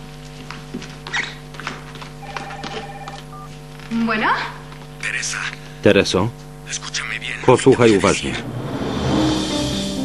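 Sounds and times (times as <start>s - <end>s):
telephone ringing: 2.2s - 3.6s
soft background music: 8.4s - 10.0s.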